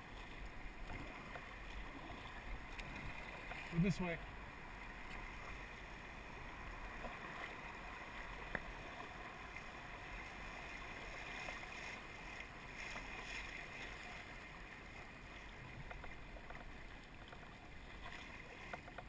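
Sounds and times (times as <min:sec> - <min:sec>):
river water rushing: 0:00.0 - 0:15.7.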